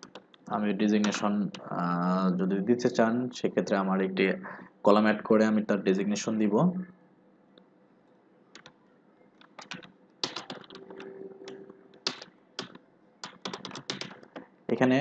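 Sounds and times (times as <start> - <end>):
computer keyboard keystrokes: 0.0 - 1.2, 8.6 - 8.8, 9.4 - 14.5.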